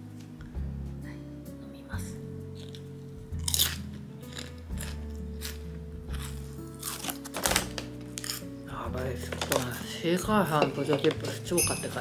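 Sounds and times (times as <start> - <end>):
background music: 0.0 - 12.0
chewing: 2.6 - 7.3
potato chip crunching: 3.4 - 8.5.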